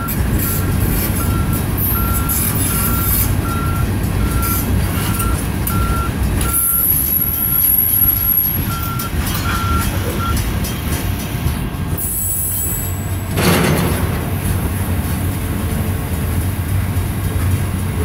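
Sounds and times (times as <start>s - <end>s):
high wheel squeal: 0.0s - 10.4s, 12.0s - 13.2s
steel wheels rumbling on rail: 0.0s - 18.0s.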